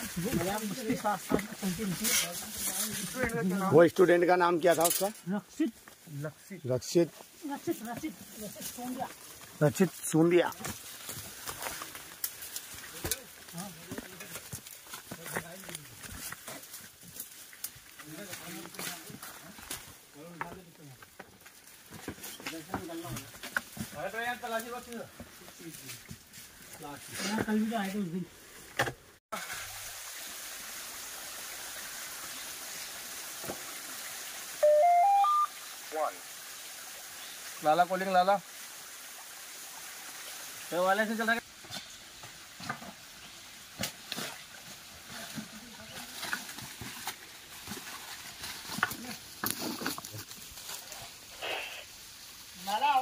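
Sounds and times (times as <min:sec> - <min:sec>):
twigs crackling and rustling: 0:00.0 - 0:06.2, 0:07.2 - 0:28.0, 0:43.9 - 0:53.0
footsteps on dry leaves and stones: 0:07.1 - 0:27.9, 0:44.0 - 0:51.8
phone chime rising tones: 0:34.6 - 0:35.5.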